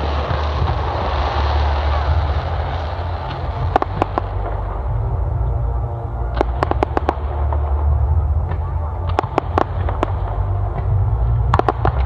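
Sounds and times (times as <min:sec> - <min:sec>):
sharp firework cracks: 0:00.0 - 0:04.6, 0:09.0 - 0:12.0
deep rumble of firework bursts: 0:00.0 - 0:12.0.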